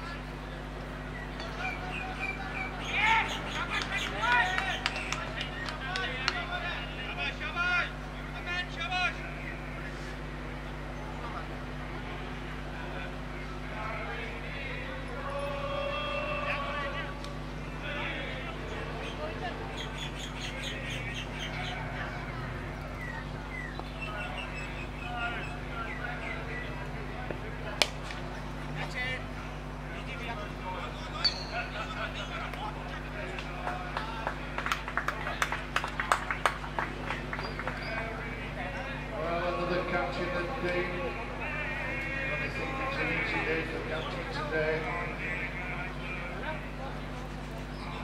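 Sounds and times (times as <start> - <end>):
background chatter: 0.0 - 48.0
spectators clapping: 3.0 - 6.7, 32.4 - 38.3.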